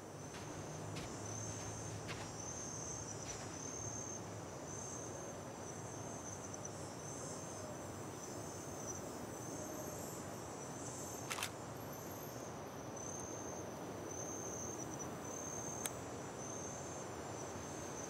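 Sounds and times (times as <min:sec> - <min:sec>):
low background hum: 0:00.0 - 0:05.0
crickets chirping: 0:00.0 - 0:18.0.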